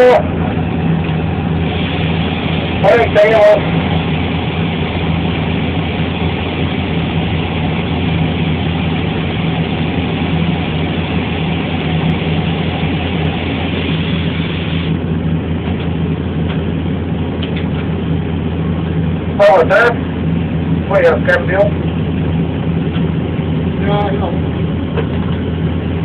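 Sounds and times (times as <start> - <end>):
heavy engine idling: 0.0 - 26.0.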